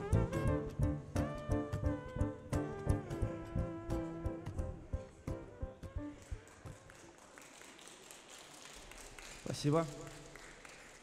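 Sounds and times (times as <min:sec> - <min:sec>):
small audience clapping: 0:06.0 - 0:11.0.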